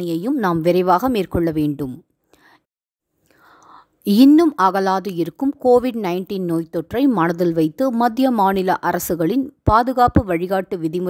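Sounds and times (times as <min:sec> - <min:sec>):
person speaking: 0:00.0 - 0:02.0
faint breath noise: 0:02.3 - 0:04.0
soft intake of breath: 0:02.3 - 0:04.0.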